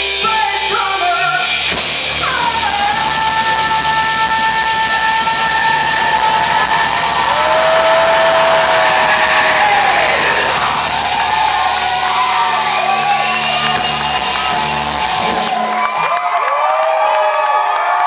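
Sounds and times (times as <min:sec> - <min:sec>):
rock band with electric guitars: 0:00.0 - 0:16.0.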